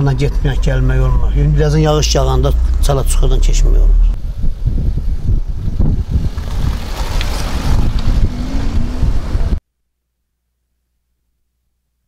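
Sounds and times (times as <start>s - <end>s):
street traffic: 0.0s - 9.6s
wind rumbling on microphone: 0.0s - 9.6s.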